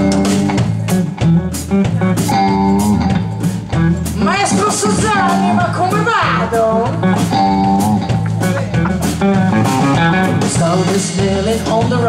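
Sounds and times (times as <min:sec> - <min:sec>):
bass guitar: 0:00.0 - 0:12.0
drum kit steady beat: 0:00.0 - 0:12.0
guitar: 0:00.0 - 0:12.0.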